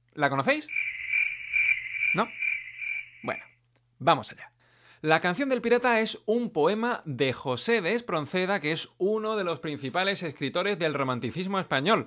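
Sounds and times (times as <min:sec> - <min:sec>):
crickets chirping sound effect: 0:00.7 - 0:03.6.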